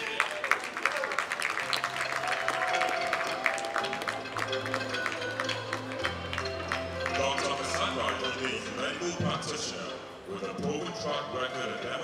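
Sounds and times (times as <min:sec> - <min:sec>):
audience applause: 0:00.0 - 0:08.6
stage music: 0:00.0 - 0:12.0.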